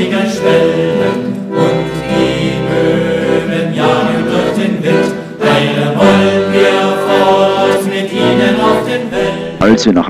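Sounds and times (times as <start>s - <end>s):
choir singing: 0.0s - 9.7s.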